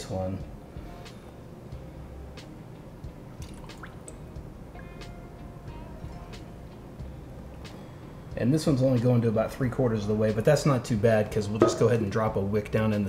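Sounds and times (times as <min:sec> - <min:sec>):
quiet background music: 0:00.0 - 0:13.0
small drips and clicks: 0:03.4 - 0:04.2.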